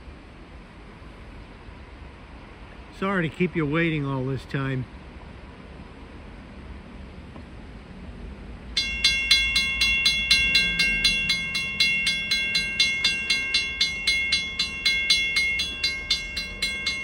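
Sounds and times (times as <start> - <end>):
railroad crossing bell ringing: 8.7 - 17.0.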